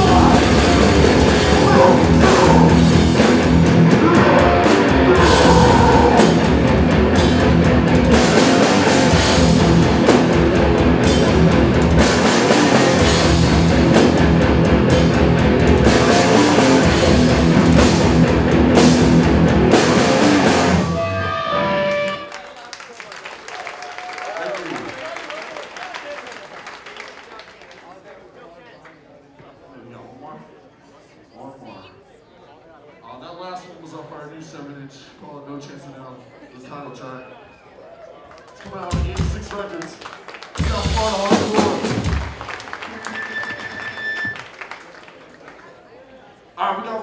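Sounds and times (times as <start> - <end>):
live punk band playing: 0.0 - 22.3, 40.6 - 43.2
ringing guitar note: 20.8 - 22.3.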